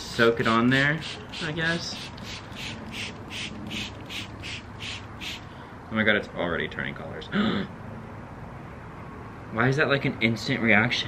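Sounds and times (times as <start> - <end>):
spray bottle hissing sprays: 0.4 - 5.5.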